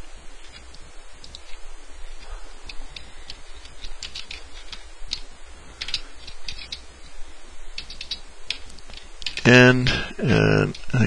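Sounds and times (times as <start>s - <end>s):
computer keyboard typing: 3.8s - 5.2s, 5.8s - 6.8s, 7.8s - 9.4s.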